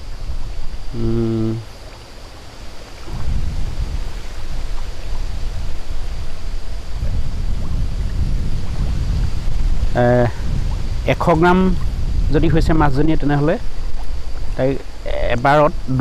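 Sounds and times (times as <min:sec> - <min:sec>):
wind buffeting microphone: 0:00.0 - 0:01.8, 0:02.4 - 0:16.0.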